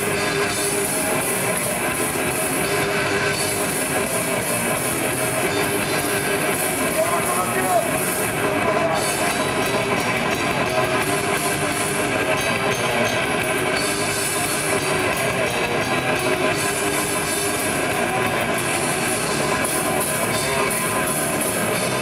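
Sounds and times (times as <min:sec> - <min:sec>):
bass guitar: 0:00.0 - 0:22.0
distorted electric guitars: 0:00.0 - 0:22.0
fast drumming: 0:00.0 - 0:22.0.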